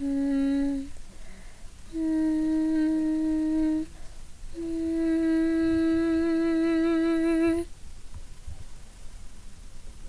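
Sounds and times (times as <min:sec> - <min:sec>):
person humming: 0:00.0 - 0:01.0, 0:01.9 - 0:07.7.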